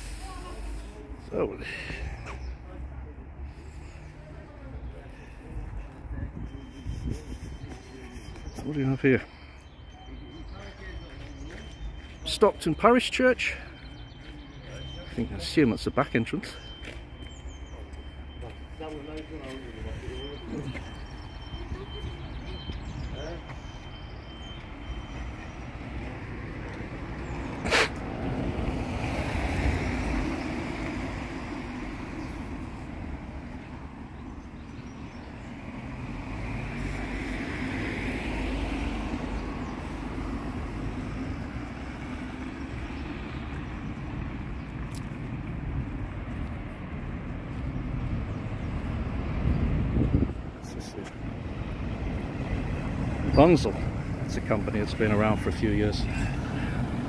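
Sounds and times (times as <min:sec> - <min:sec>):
road traffic passing: 0:00.0 - 0:57.0.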